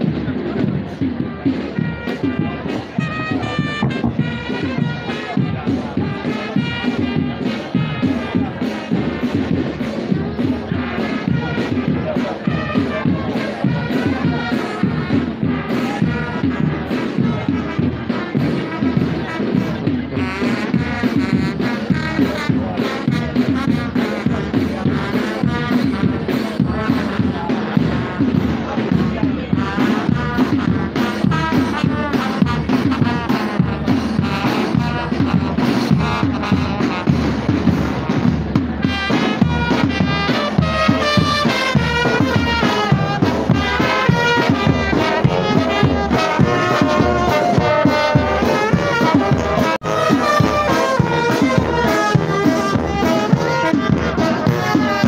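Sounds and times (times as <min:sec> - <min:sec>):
brass band tune: 0:00.0 - 0:55.0
marching drums beat: 0:00.0 - 0:55.0.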